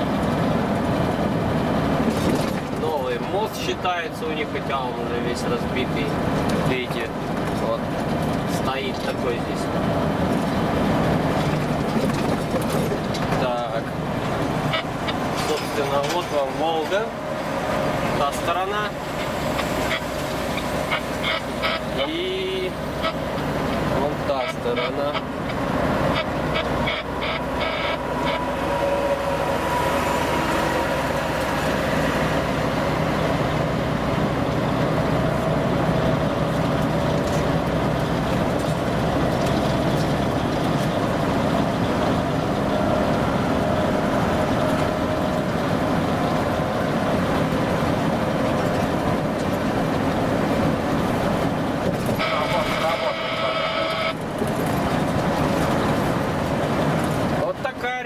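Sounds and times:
truck engine and road noise: 0.0 - 58.0
horn-like tone: 20.9 - 23.2, 26.1 - 30.8, 52.2 - 54.2.

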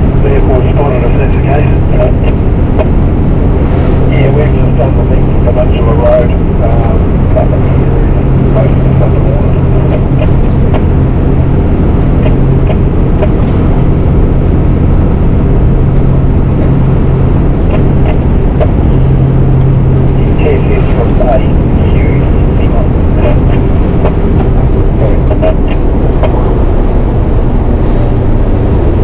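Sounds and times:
road and wind noise: 0.0 - 29.0
truck diesel engine running: 0.0 - 29.0.

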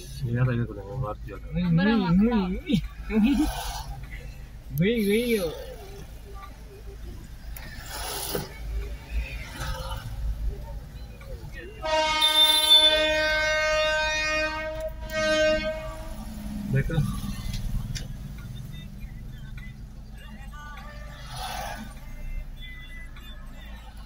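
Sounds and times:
road noise inside a car: 0.0 - 24.0
car horn blasts: 11.8 - 16.4.

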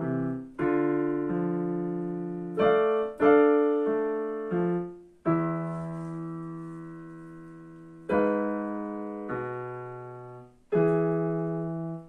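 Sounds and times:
digital piano chord: 0.0 - 12.0.

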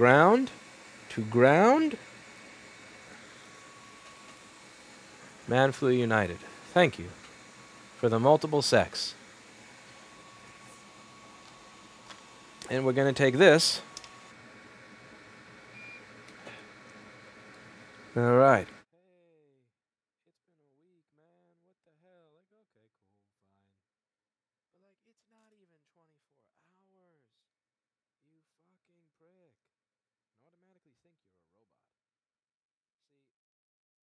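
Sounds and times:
background hiss: 0.0 - 14.3.

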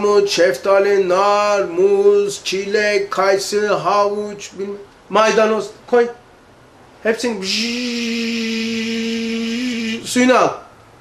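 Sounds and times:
man imitating a blender: 7.3 - 10.5.

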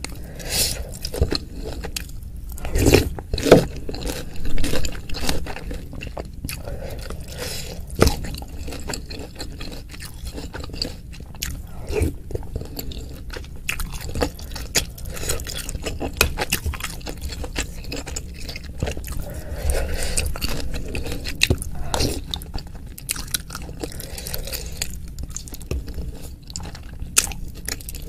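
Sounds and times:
close chewing: 0.0 - 28.0.

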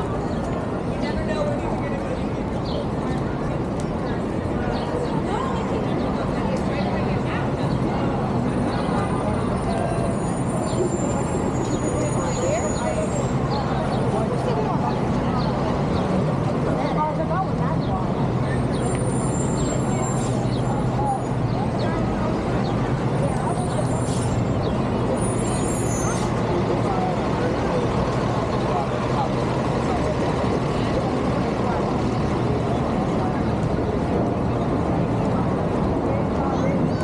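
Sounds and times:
people talking: 0.0 - 37.0
traffic engine rumble: 0.0 - 37.0.

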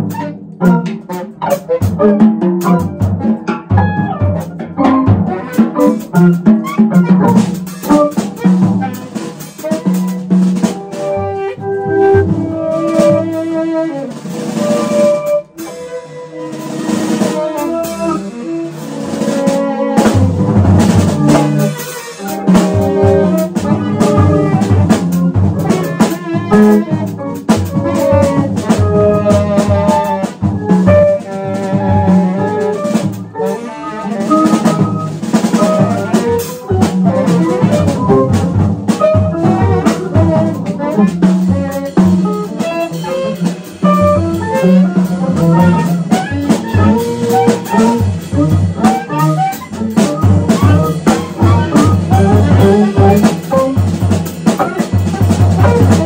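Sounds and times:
busy irregular drumming: 0.0 - 56.0
guitar: 0.0 - 56.0
tenor saxophone: 0.0 - 56.0.

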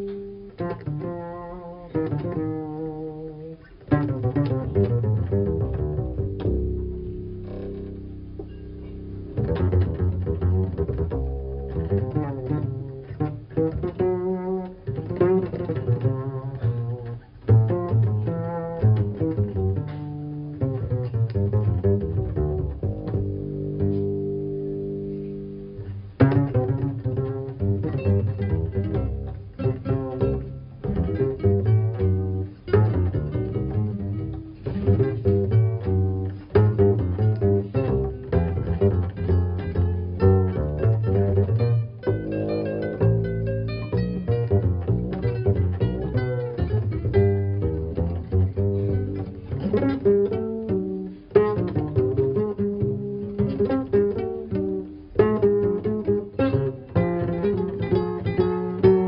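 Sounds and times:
plucked double bass jazz solo: 0.0 - 59.0.

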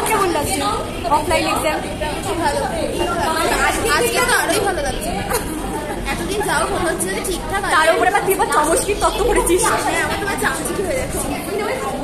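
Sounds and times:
women chattering: 0.0 - 12.0.

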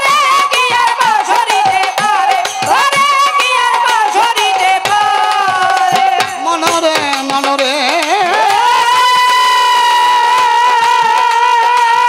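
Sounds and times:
light percussion: 0.0 - 12.0.

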